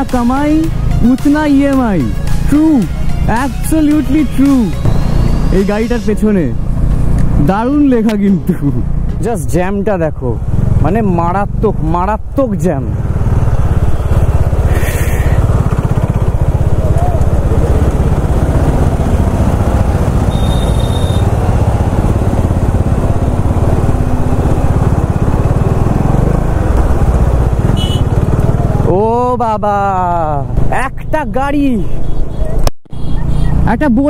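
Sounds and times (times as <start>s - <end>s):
motorcycle engine low rumble: 0.0s - 34.0s.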